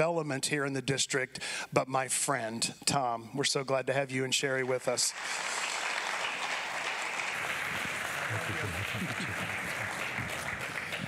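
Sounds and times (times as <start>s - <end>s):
crowd applauding: 5.1s - 11.0s.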